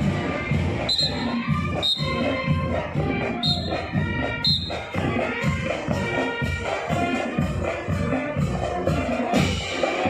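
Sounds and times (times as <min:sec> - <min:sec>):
marching band horns: 0:00.0 - 0:10.0
steady drum beat: 0:01.2 - 0:10.0.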